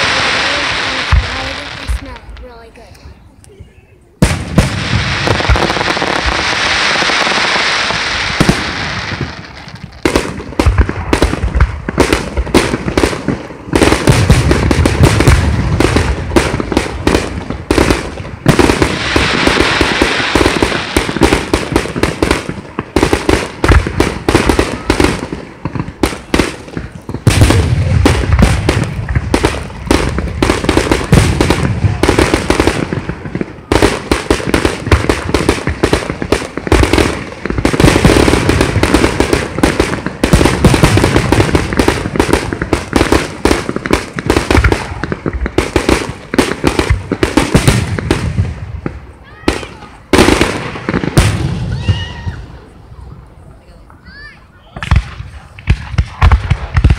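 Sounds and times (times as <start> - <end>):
fireworks bangs and crackles: 0.0 - 56.9.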